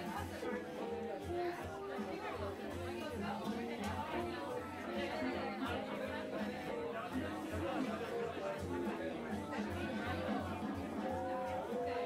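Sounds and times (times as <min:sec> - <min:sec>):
background music over speakers: 0:00.0 - 0:12.0
crowd of people chatting: 0:00.0 - 0:12.0.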